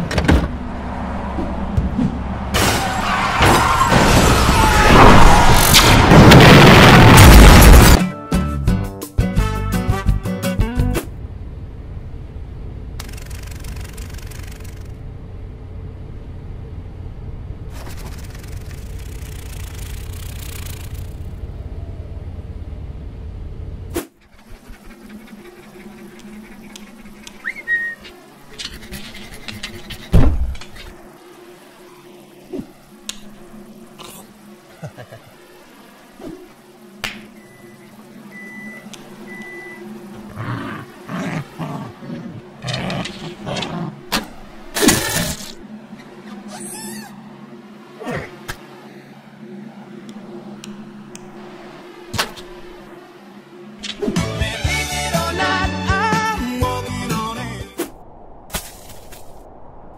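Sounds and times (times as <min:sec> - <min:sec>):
car cabin road rumble: 0:00.0 - 0:04.6, 0:10.9 - 0:31.2
low hum: 0:00.0 - 0:08.0, 0:09.4 - 0:59.9
wind hiss: 0:56.2 - 0:59.9.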